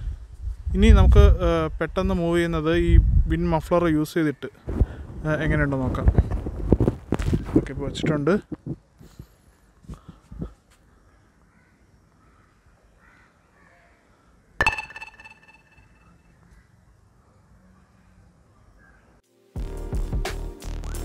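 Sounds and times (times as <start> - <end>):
faint outdoor ambience: 0.0 - 19.6
loud ringing call: 14.6 - 16.2.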